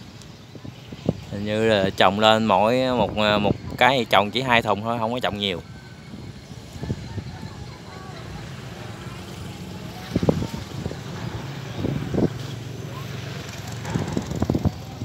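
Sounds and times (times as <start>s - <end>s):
distant voices calling: 0.0s - 15.0s
low engine hum: 5.6s - 15.0s.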